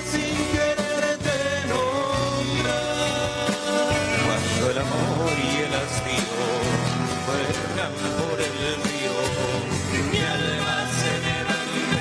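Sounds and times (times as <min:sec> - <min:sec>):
man singing: 0:00.0 - 0:12.0
steady bass: 0:00.0 - 0:12.0
strummed acoustic guitars: 0:00.0 - 0:12.0.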